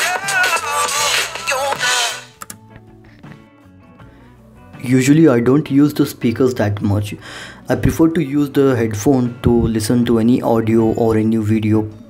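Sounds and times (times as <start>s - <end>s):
music from laptop speakers: 0.0s - 3.5s.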